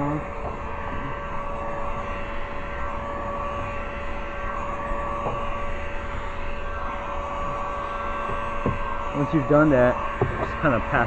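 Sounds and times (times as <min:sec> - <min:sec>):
heat gun fan whine: 0:00.0 - 0:11.0.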